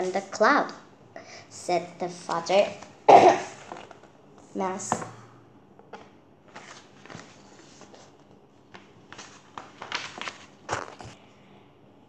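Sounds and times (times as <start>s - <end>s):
book pages rustling: 3.6s - 4.1s, 5.9s - 11.2s.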